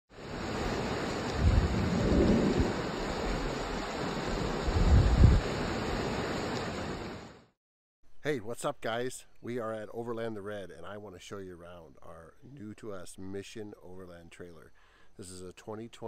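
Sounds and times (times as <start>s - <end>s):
rushing water: 0.1s - 7.5s.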